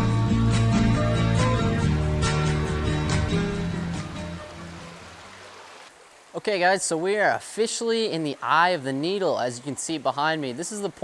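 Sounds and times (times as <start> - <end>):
acoustic guitar music: 0.0 - 5.0
shallow stream rushing: 2.6 - 11.0.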